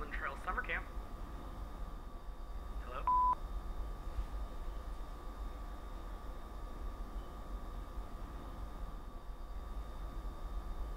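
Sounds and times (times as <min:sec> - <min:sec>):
low steady hum: 0:00.0 - 0:10.9
phone short beep: 0:03.1 - 0:03.4.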